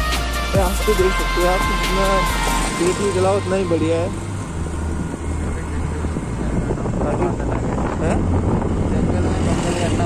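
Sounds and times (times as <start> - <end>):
rushing wind noise: 0.0 - 10.0.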